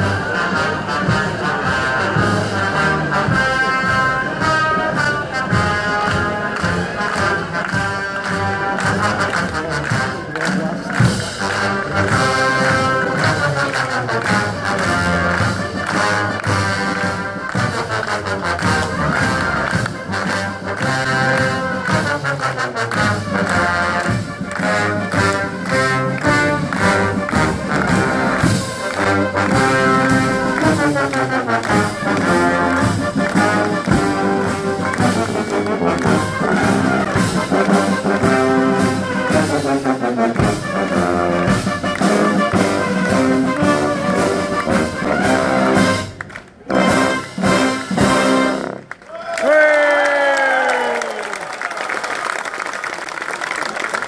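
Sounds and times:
brass band playing a march: 0.0s - 49.0s
crowd clapping: 6.0s - 39.3s, 41.4s - 47.0s, 48.6s - 54.0s.

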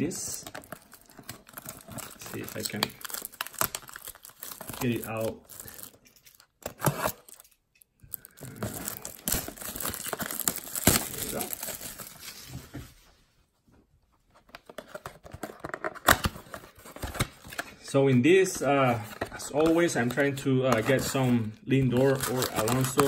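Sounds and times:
cardboard and foil tearing: 0.6s - 7.4s, 8.1s - 12.5s, 22.0s - 23.0s.

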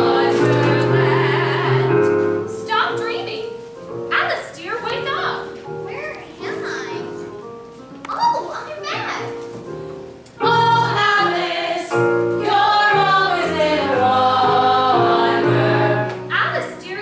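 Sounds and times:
instrumental accompaniment: 0.0s - 17.0s.

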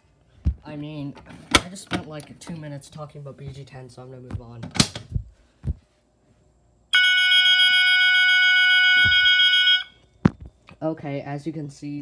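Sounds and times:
fire alarm horn tone: 6.9s - 10.1s.

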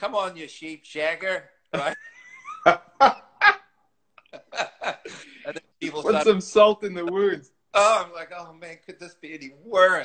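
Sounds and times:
men laughing: 1.7s - 6.5s.

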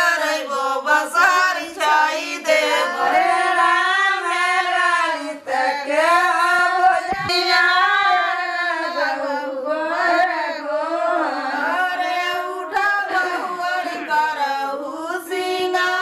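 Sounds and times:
women singing unaccompanied: 0.0s - 16.0s.

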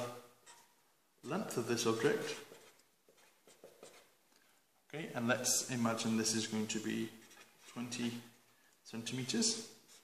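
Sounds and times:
marker pen drawing on paper: 1.9s - 4.2s.

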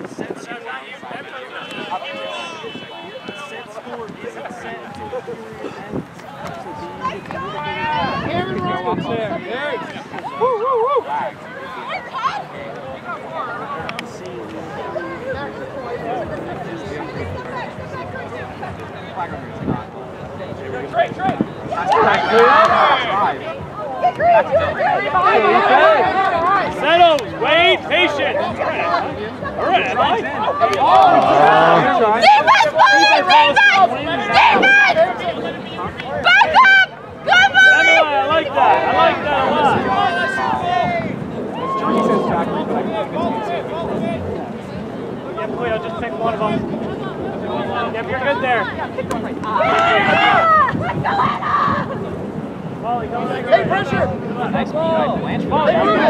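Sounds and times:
mix of voices: 0.0s - 56.0s
people talking and calling out: 0.0s - 56.0s.

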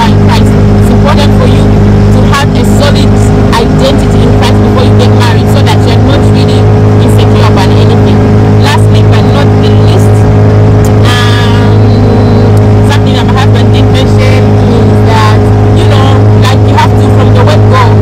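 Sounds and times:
motorboat engine droning: 0.0s - 18.0s.

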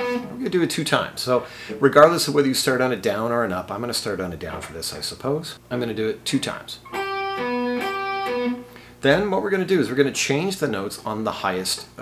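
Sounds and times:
electric guitar single notes: 0.0s - 0.4s, 6.8s - 8.9s.

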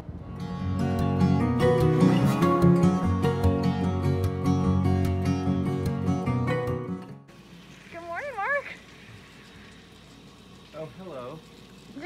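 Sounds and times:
acoustic guitar music: 0.0s - 8.6s
outdoor shower running: 7.2s - 12.0s.

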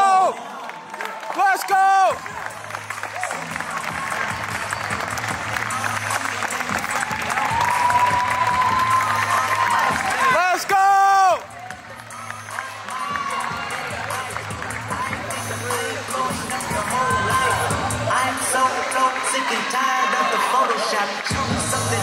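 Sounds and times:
audience cheering and applauding: 0.0s - 22.0s
loud shout nearby: 7.2s - 11.4s, 16.6s - 18.3s, 18.9s - 21.2s.

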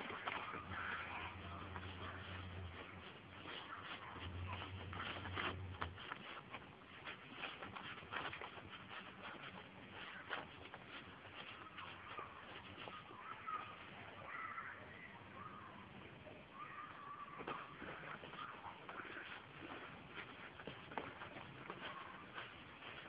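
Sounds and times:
feed bag rustling and crinkling: 0.0s - 14.0s, 17.2s - 23.0s.

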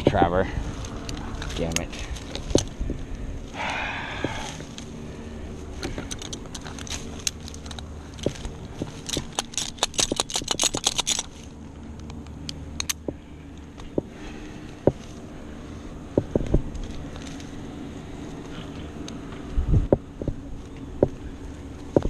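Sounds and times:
climbing hardware clinking: 5.7s - 14.1s.

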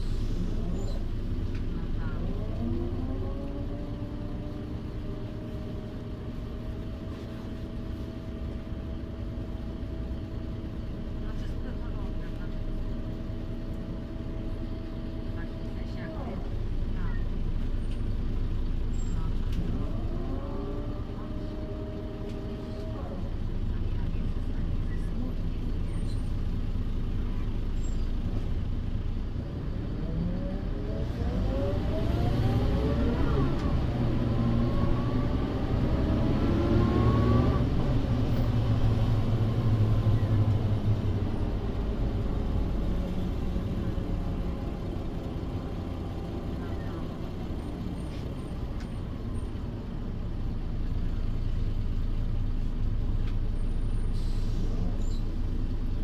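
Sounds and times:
bus diesel engine running: 0.0s - 56.0s.

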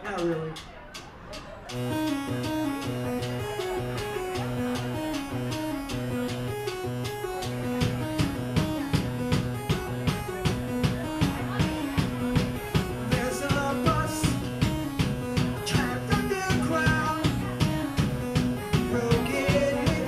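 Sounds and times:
drum kit: 1.7s - 20.0s
guitars and bass riff: 1.7s - 20.0s.

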